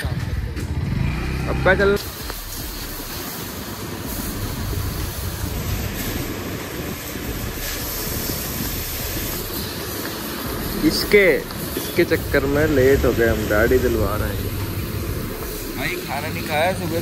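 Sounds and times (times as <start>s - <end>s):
vehicle road rumble: 0.0s - 17.0s.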